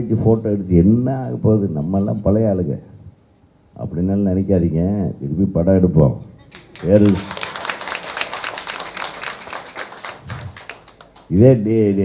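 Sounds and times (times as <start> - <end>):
audience clapping: 6.5 - 11.6.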